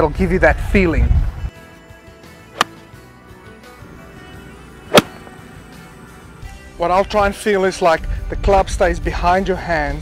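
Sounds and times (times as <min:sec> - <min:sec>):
golf club striking ball: 0:02.6 - 0:02.8, 0:04.9 - 0:05.5.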